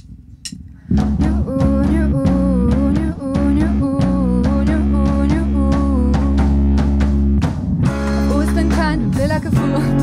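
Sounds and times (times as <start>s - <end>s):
pop-rock band playing: 0.9s - 10.0s
woman singing: 1.0s - 6.6s, 8.2s - 10.0s.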